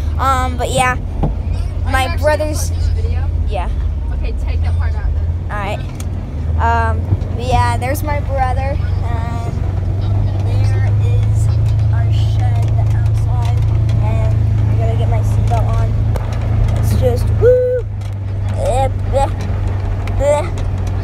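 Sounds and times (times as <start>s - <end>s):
utility vehicle engine droning: 0.0s - 21.0s.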